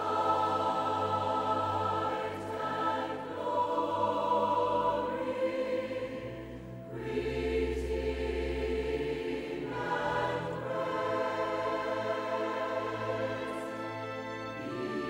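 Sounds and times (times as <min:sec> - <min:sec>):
choir singing held chords: 0:00.0 - 0:15.0.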